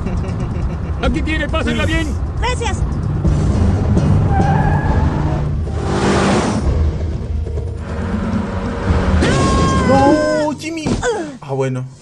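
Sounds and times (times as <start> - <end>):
car engine rumble: 0.0 - 10.6
tense background music: 0.6 - 10.8.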